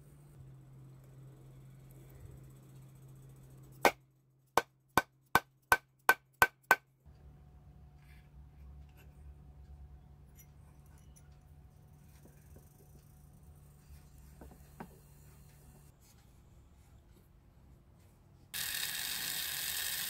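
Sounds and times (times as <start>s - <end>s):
faint low hum: 0.0s - 3.8s.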